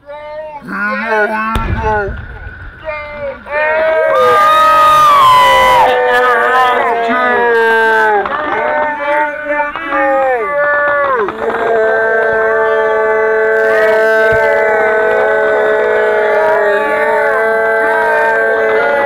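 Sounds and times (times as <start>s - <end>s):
firework whistles screaming: 1.1s - 15.6s
sharp pop: 1.5s - 3.9s.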